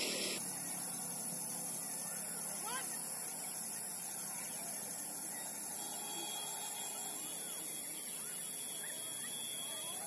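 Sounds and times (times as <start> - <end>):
steady outdoor hiss: 0.0 - 10.0
faint bird chirps: 0.3 - 10.0.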